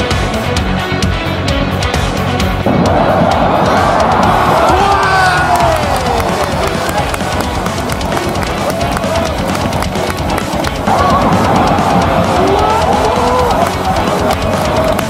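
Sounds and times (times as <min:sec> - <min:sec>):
claps or drum hits: 0:02.7 - 0:15.0.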